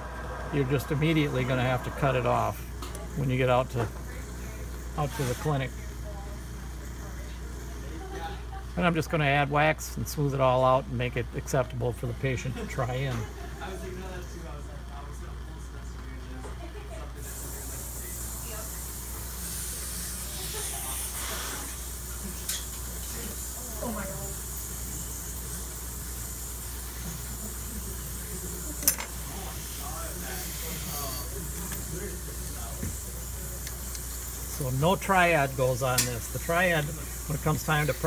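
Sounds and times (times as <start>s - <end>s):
low hum: 0.0s - 5.0s
steady hiss: 0.0s - 6.2s, 17.2s - 38.0s.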